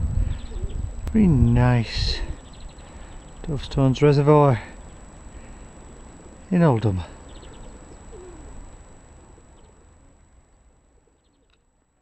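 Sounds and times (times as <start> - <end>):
faint short bird calls: 7.1 - 8.6, 9.2 - 11.6.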